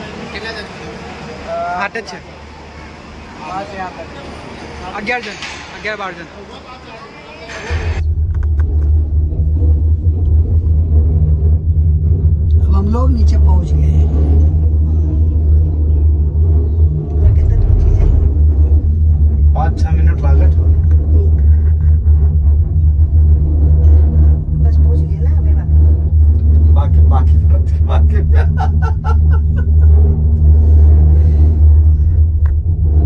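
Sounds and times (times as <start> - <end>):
cable car low rumble: 0.0 - 33.0.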